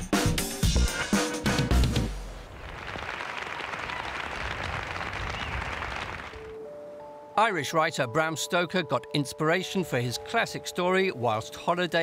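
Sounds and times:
large crowd applauding: 2.5 - 6.6.

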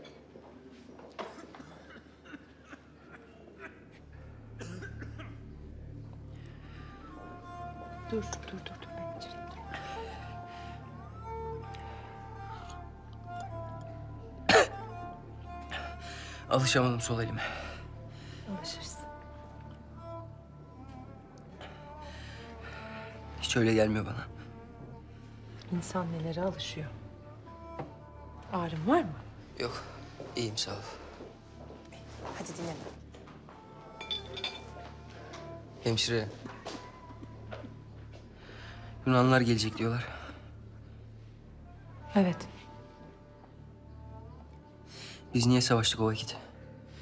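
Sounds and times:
soft background score: 0.0 - 47.0
person coughing: 4.6 - 5.4, 14.5 - 14.8.

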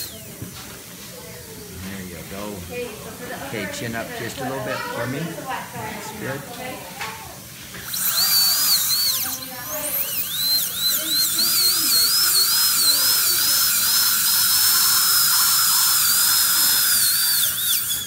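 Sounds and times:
dental drill whining: 0.0 - 0.6, 7.7 - 18.0.

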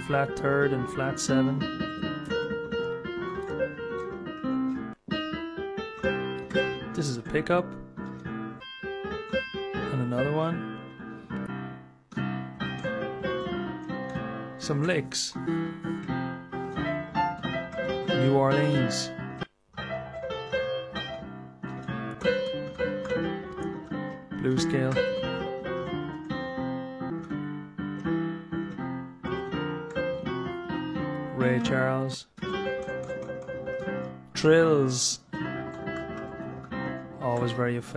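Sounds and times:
piano playing blues phrases: 0.0 - 37.9.

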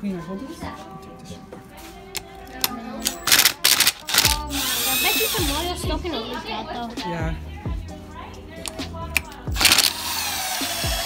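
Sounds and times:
power drill motor whining: 3.0 - 5.8, 9.5 - 11.0.

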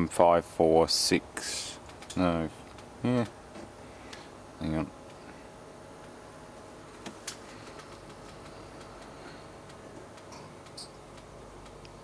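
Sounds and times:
faint steady hum: 0.0 - 12.0
soft irregular ticks: 7.3 - 12.0.

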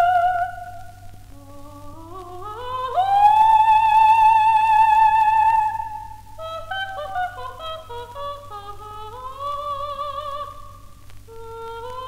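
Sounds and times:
soprano singing: 0.0 - 12.0.

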